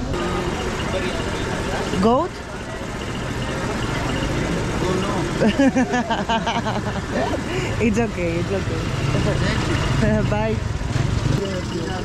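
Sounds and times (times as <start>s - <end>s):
people's voices: 0.0s - 10.7s, 11.3s - 12.0s
vehicle engines idling: 0.0s - 12.0s.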